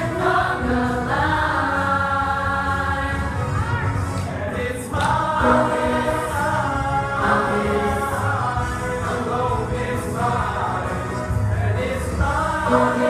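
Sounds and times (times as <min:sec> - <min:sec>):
young voices singing in unison: 0:00.0 - 0:13.0.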